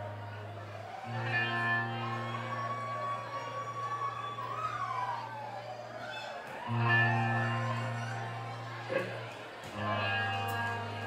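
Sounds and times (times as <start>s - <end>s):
high bending guitar tone: 0.0s - 4.5s, 6.7s - 11.0s
live rock band guitar and bass: 0.0s - 6.0s, 6.6s - 11.0s.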